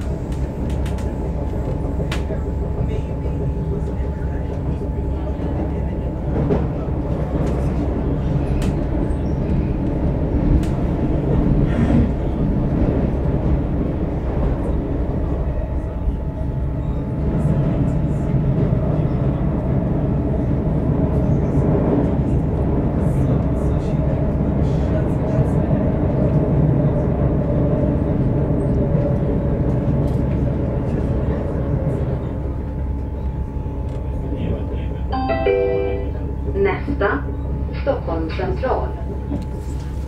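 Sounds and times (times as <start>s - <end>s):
train wheels rumbling on track: 0.0s - 35.1s.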